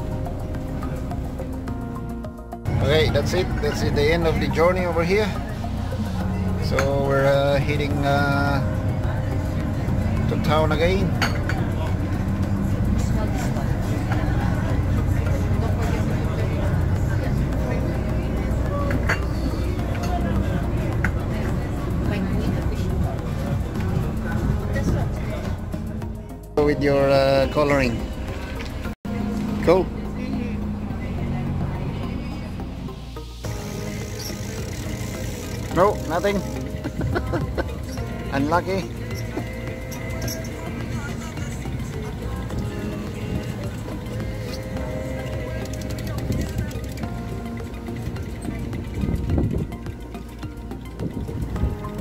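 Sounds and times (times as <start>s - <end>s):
boat engine droning: 0.0s - 52.0s
wind: 0.0s - 52.0s
passengers' voices: 8.5s - 26.1s, 28.5s - 49.6s
rushing wake water: 30.9s - 52.0s.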